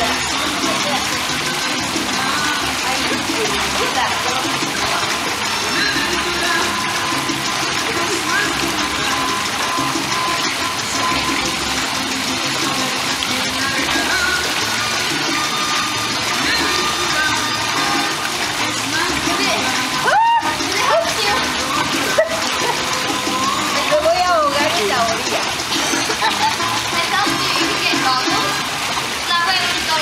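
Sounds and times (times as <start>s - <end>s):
faint music: 0.0s - 30.0s
indistinct voices: 0.0s - 30.0s
pool water sloshing and lapping: 0.0s - 30.0s.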